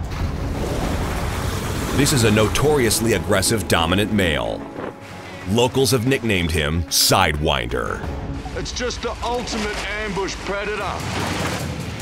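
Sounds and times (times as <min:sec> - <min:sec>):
rushing churning water: 0:00.0 - 0:12.0.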